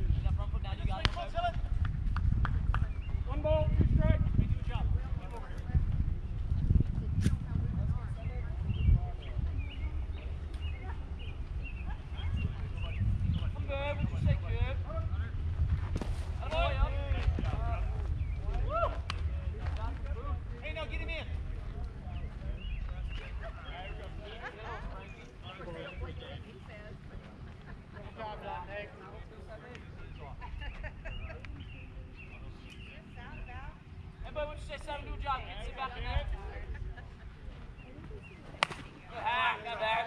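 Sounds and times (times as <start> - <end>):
wind rumble on microphone: 0.0 - 27.4, 30.3 - 39.1
baseball bat smack: 38.6 - 38.9.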